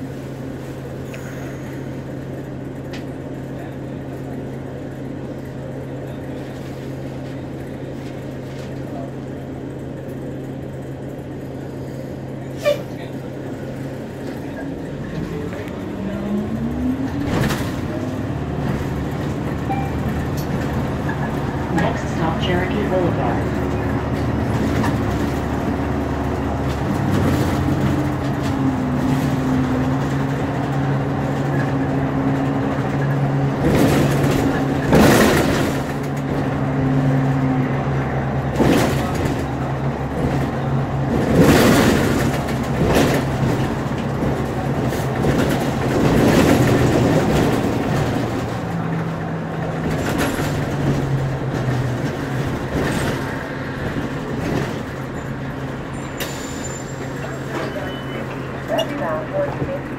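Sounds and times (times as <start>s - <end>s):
bus engine hum: 0.0s - 59.9s
road noise: 0.0s - 59.9s.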